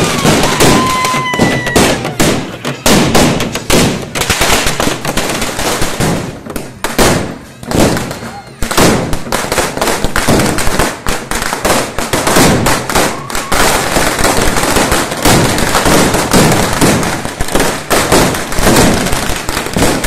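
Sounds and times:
firecrackers cracking and banging: 0.0s - 20.0s.

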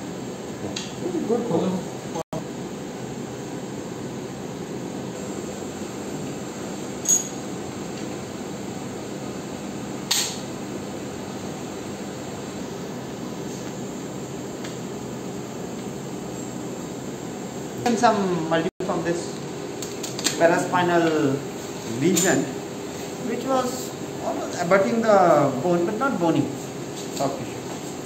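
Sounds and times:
steady room hum: 0.0s - 28.0s.

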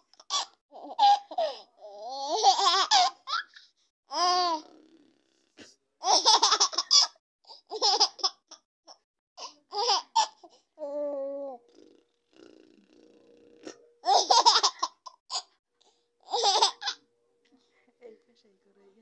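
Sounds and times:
baby drawn-out vocal sound: 4.1s - 5.2s, 10.3s - 13.8s
baby giggling: 6.0s - 7.1s, 9.7s - 11.1s, 13.6s - 15.5s, 16.2s - 17.0s.

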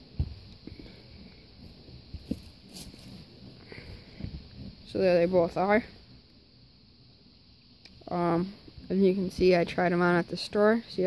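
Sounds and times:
soft rustles: 0.2s - 5.0s.

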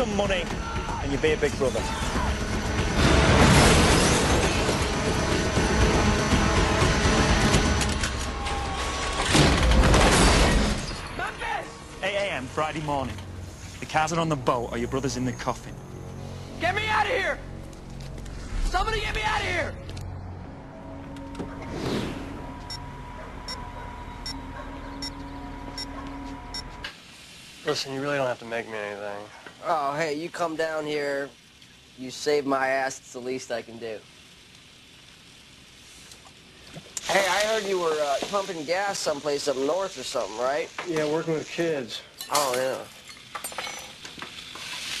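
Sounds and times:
quiet sustained music: 11.4s - 26.9s
food sizzling in skillet: 26.9s - 42.0s, 42.6s - 45.0s.

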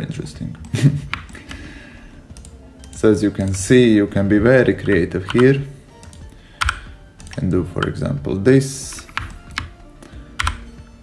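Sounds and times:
keyboard and mouse clicks: 0.5s - 1.6s, 2.3s - 8.0s, 8.9s - 10.7s.

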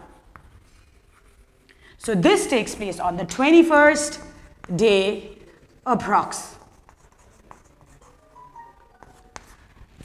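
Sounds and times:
faint writing strokes: 0.0s - 1.7s, 6.5s - 10.0s.

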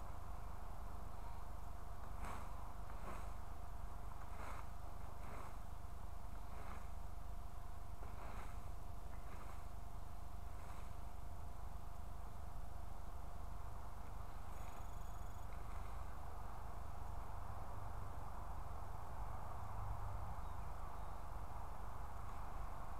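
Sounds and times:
rake swishing through dry leaves: 0.0s - 12.0s, 14.1s - 16.2s
wind rumble on microphone: 0.0s - 22.9s.

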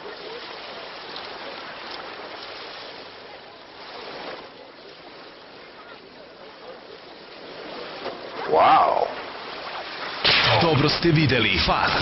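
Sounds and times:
rushing water: 0.0s - 12.0s.

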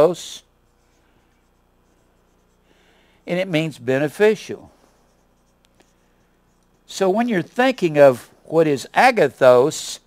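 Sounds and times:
marker scratching on whiteboard: 0.7s - 2.6s, 4.3s - 7.7s.

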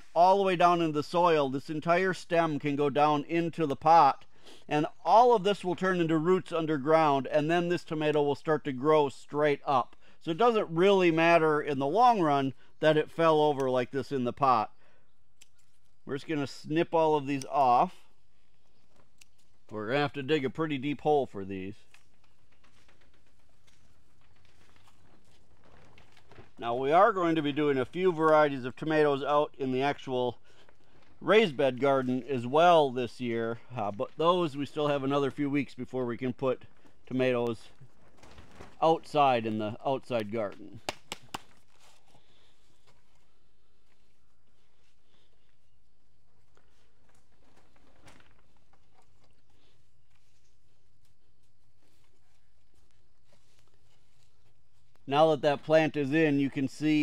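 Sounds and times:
soil crumbling crackles: 0.0s - 57.0s
hands rustling moist soil: 7.8s - 57.0s.

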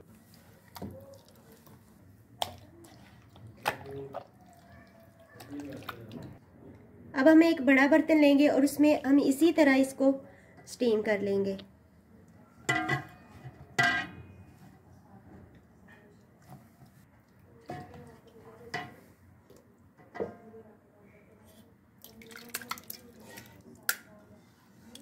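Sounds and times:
wet meat slapping into metal pot: 2.4s - 4.6s, 22.0s - 24.1s.

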